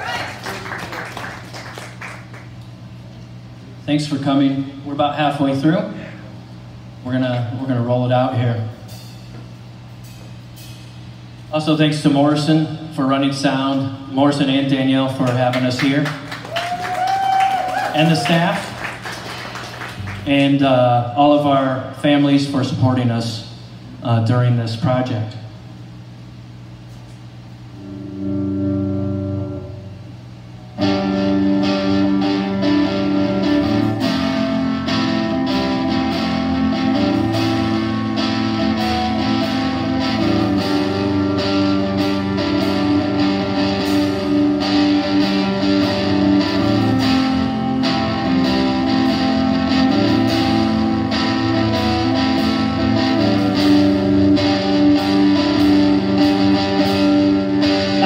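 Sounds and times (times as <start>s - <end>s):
drums: 0.0s - 24.1s, 25.6s - 58.0s
bass guitar: 19.9s - 23.4s, 27.6s - 58.0s
distorted electric guitars: 27.7s - 58.0s
electric guitar chord ringing: 27.7s - 58.0s.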